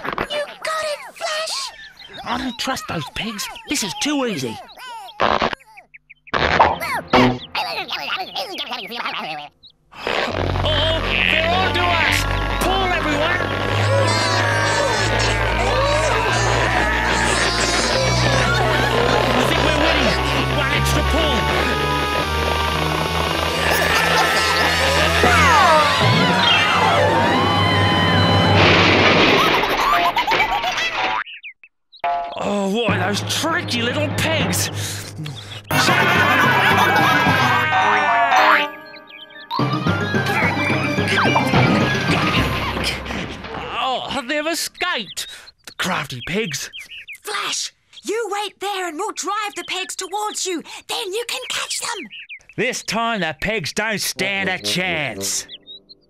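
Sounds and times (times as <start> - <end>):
squeaky straining vocal sounds: 0.0 - 29.9
background music with bass: 6.4 - 7.6, 10.1 - 28.6, 32.9 - 38.2, 38.8 - 43.0
comic sound effects: 6.4 - 7.6, 10.0 - 31.2, 32.4 - 43.7, 54.2 - 55.5
springy boing effects: 6.4 - 7.6, 32.0 - 32.5.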